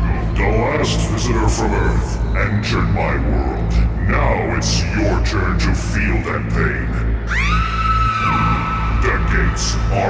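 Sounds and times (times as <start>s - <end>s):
electronic music with bass drone: 5.6s - 10.0s.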